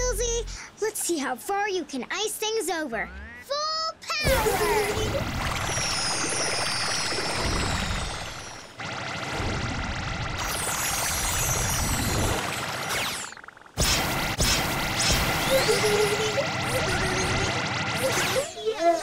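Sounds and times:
cartoon background music: 3.0s - 8.6s.

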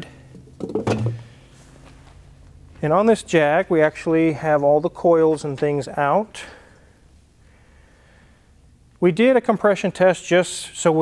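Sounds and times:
metal part knocking on concrete: 0.4s - 1.3s.

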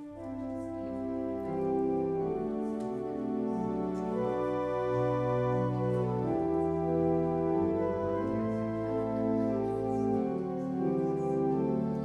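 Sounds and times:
keyboard chords over bass: 0.0s - 12.0s.

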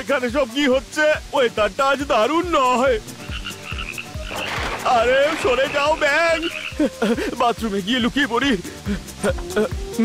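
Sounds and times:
rain hissing: 0.0s - 10.0s
cartoon frog croaking: 3.2s - 6.9s.

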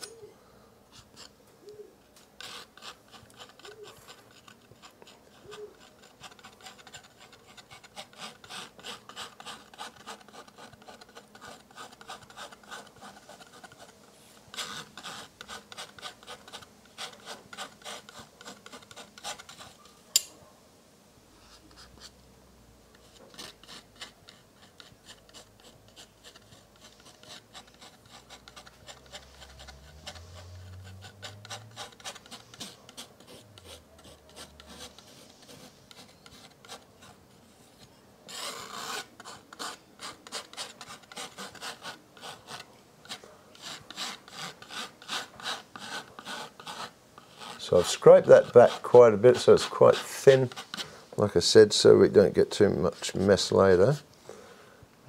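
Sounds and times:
palette knife scraping paint on canvas: 2.4s - 19.9s, 22.9s - 54.0s.

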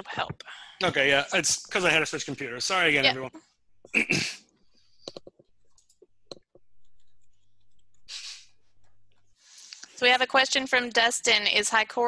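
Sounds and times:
computer mouse and keyboard clicks: 5.0s - 8.0s.

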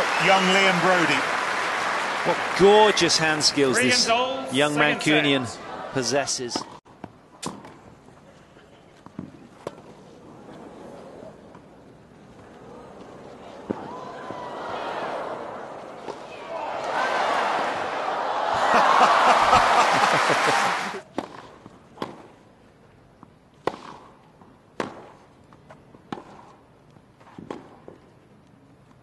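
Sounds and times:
crowd cheering and applause: 0.0s - 6.0s, 13.8s - 21.0s
tennis racket striking ball: 23.6s - 24.2s.

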